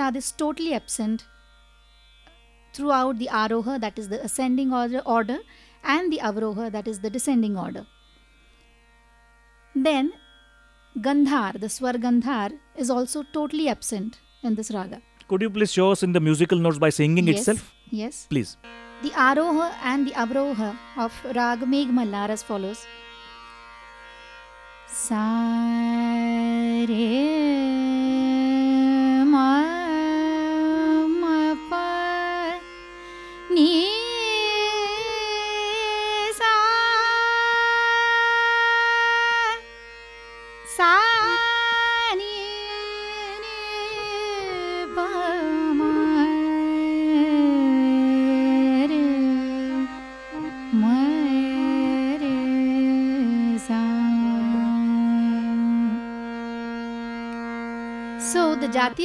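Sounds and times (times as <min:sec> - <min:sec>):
woman singing classical scale: 0:17.2 - 0:17.6, 0:25.0 - 0:32.7, 0:33.5 - 0:39.6, 0:40.7 - 0:56.2, 0:58.2 - 0:59.0.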